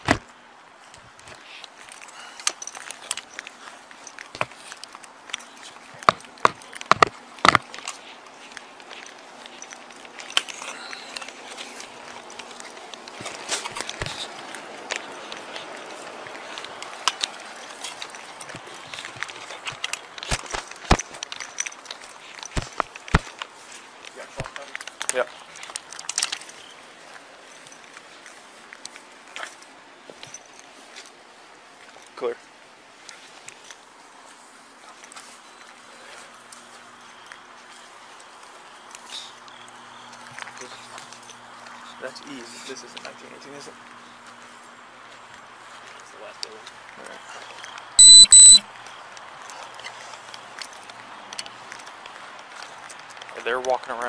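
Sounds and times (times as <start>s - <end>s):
footsteps: 0.0s - 32.2s.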